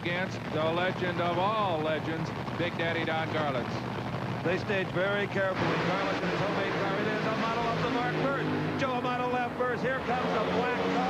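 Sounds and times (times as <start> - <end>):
commentator speaking: 0.0 - 3.8, 4.4 - 11.0
dragster engines rushing: 0.0 - 11.0.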